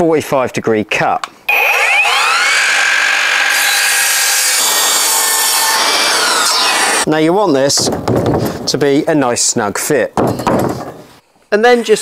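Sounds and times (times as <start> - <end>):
mitre saw whine: 1.5 - 7.1
saw cutting through timber: 1.5 - 7.1.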